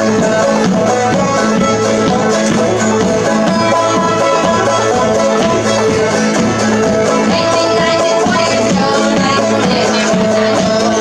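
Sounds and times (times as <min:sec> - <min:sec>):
acoustic guitars: 0:00.0 - 0:11.0
banjo: 0:00.0 - 0:11.0.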